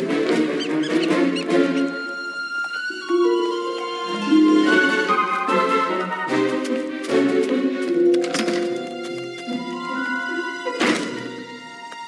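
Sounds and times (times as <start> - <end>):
orchestral music: 0.0 - 12.0
cartoon weasel squeaks: 0.6 - 2.2.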